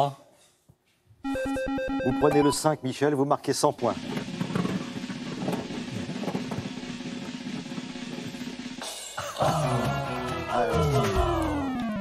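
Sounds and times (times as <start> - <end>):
snare drum roll: 4.1 - 9.0.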